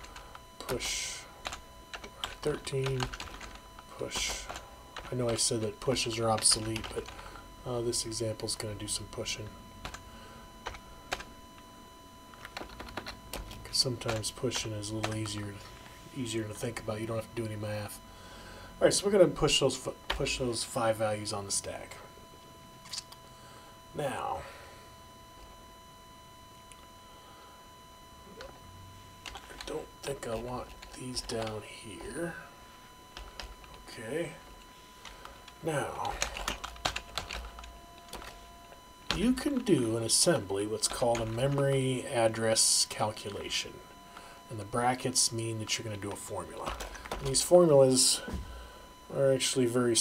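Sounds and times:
keyboard typing: 0:00.0 - 0:07.2, 0:10.6 - 0:11.3, 0:12.3 - 0:15.6, 0:29.2 - 0:31.6, 0:35.0 - 0:38.5, 0:40.9 - 0:41.9, 0:46.6 - 0:47.4.

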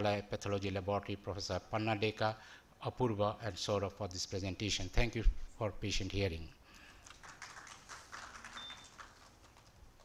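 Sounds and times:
faint scattered applause: 0:07.0 - 0:09.7.

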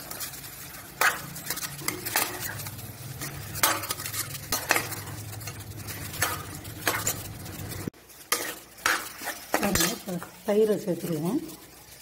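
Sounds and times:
spoon scraping and clinking pot: 0:00.0 - 0:10.4
food sizzling: 0:00.0 - 0:12.0.

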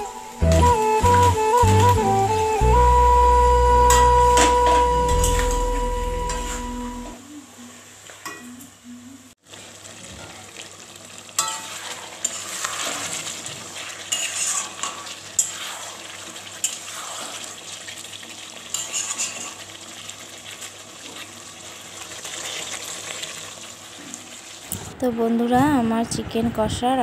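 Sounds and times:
curry sizzling in a metal pan: 0:00.0 - 0:08.7, 0:09.4 - 0:26.1
spatula scraping and clinking pan: 0:11.4 - 0:13.2, 0:13.9 - 0:16.0, 0:18.7 - 0:19.6.

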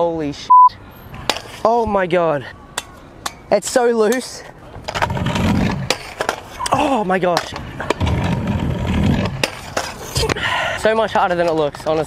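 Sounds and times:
scooter wheels rolling on wood: 0:03.6 - 0:12.0.

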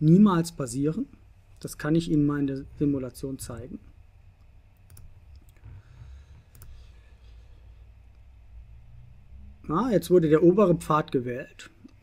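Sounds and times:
low room hum: 0:00.0 - 0:12.0
computer mouse clicking: 0:04.4 - 0:06.8.

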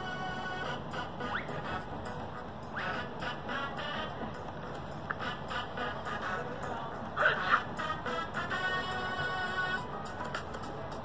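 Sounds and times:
cartoon music from a speaker: 0:00.0 - 0:11.0.

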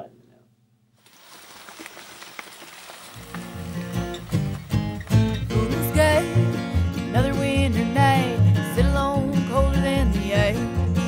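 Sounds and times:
bike tyres rolling over dry leaves: 0:01.0 - 0:06.0
acoustic guitar music: 0:03.2 - 0:11.0.

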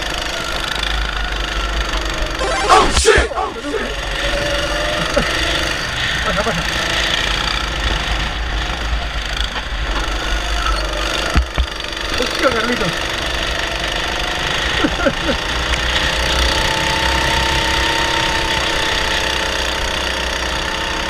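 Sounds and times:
kart engine running: 0:00.0 - 0:21.0.

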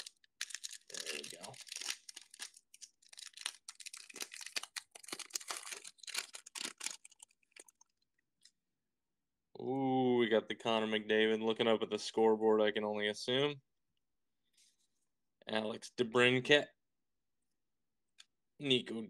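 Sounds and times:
card pack wrapper tearing and crinkling: 0:00.0 - 0:07.7.

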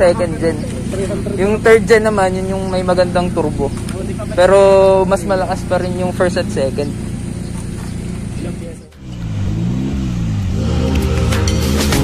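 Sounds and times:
car engine idling: 0:00.0 - 0:12.0
car engine revving: 0:00.0 - 0:12.0.

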